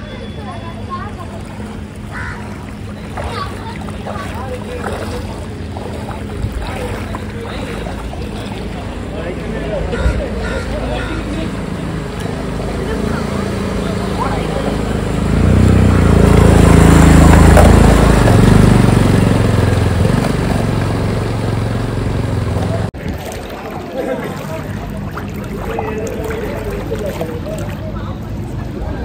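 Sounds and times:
water washing around wheels: 0:00.0 - 0:29.0
motorcycle engine: 0:10.4 - 0:23.0.

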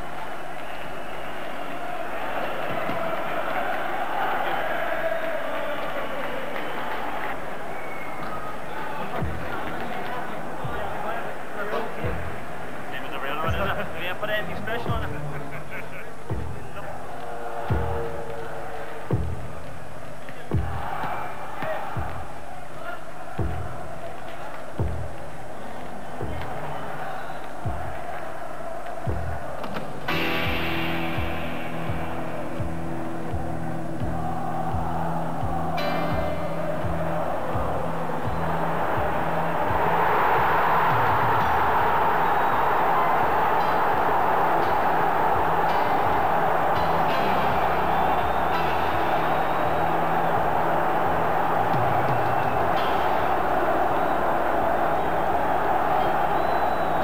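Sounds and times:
football crowd roaring: 0:00.0 - 0:57.0
music with thudding beat: 0:09.1 - 0:09.8, 0:16.3 - 0:16.8, 0:17.6 - 0:18.4, 0:19.0 - 0:19.8, 0:20.5 - 0:22.4, 0:23.3 - 0:25.4, 0:26.0 - 0:28.2, 0:28.9 - 0:53.8.

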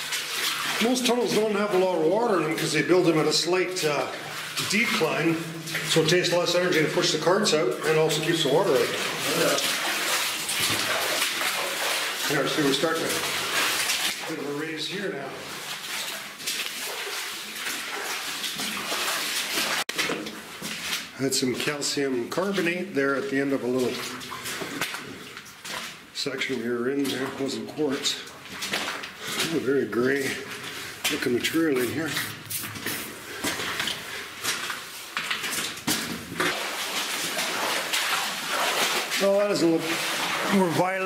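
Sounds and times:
footsteps splashing through water: 0:00.0 - 0:41.0
footsteps crunching on rubble: 0:28.4 - 0:38.8.

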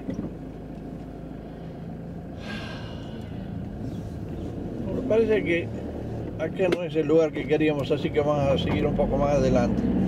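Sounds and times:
car engine and tyre hum: 0:00.0 - 0:10.0.

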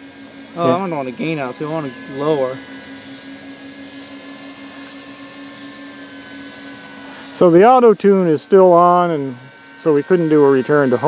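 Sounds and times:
quadcopter motors humming: 0:00.0 - 0:11.0.

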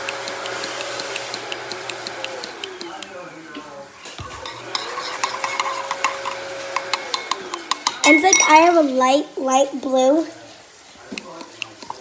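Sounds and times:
spoon stirring slime: 0:04.2 - 0:08.9, 0:11.2 - 0:12.0
spoon clinking against bowl: 0:04.3 - 0:08.9
faint held tone: 0:08.0 - 0:08.8.

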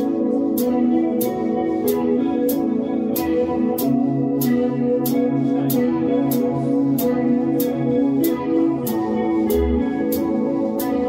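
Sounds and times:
electric guitar chords: 0:00.0 - 0:11.0
cymbal strikes: 0:09.5 - 0:10.4.

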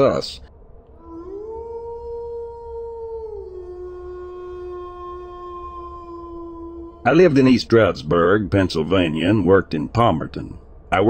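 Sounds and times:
steady low hum: 0:00.0 - 0:11.0
howl-like transition tone: 0:00.9 - 0:07.9.

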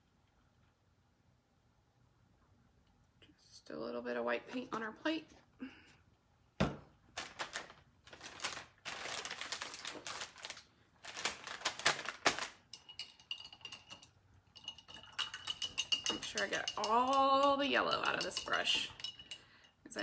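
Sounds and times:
brush tapping against cup: 0:12.7 - 0:19.5.

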